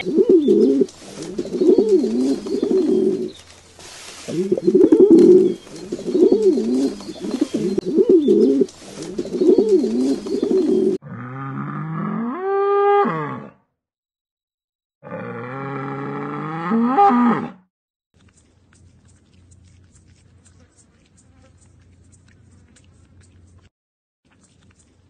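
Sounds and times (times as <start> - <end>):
wood pigeon cooing: 0.0 - 3.5, 4.2 - 11.0
cattle mooing: 15.0 - 17.6.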